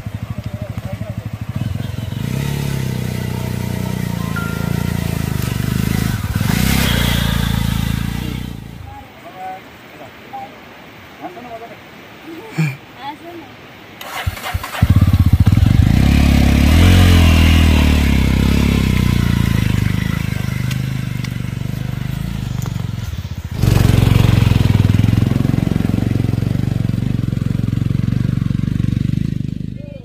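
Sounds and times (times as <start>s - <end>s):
motorcycle engine revving: 0.0s - 8.9s, 14.0s - 30.0s.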